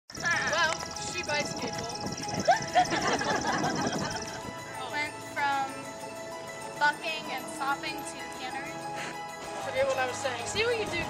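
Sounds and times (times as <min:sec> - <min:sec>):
music: 0:00.1 - 0:11.0
voices: 0:00.2 - 0:05.9, 0:06.8 - 0:08.8.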